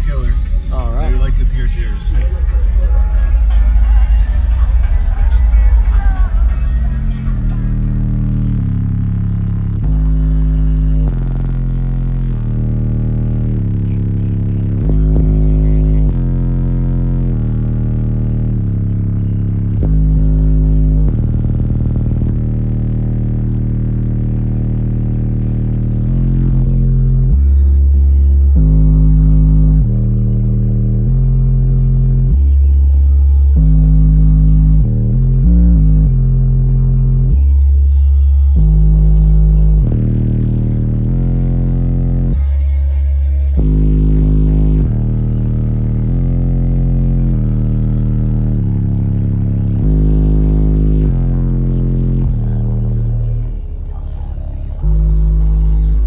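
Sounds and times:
bass-heavy music in a car: 0.0s - 56.0s.

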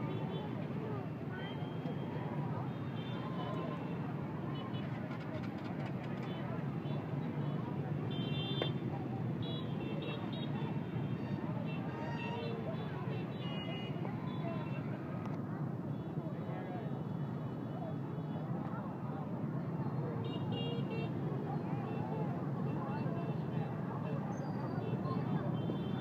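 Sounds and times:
crowd voices: 0.0s - 26.0s.

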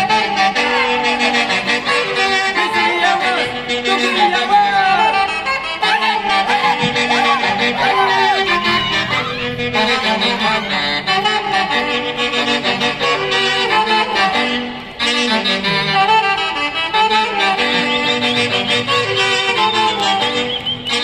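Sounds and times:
live folk band music: 0.0s - 21.0s.

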